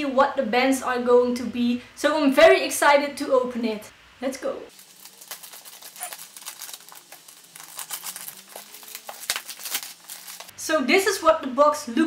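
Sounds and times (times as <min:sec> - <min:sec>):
packaging rustling and crinkling: 0:04.7 - 0:10.5
scissors cutting packaging: 0:04.8 - 0:10.5.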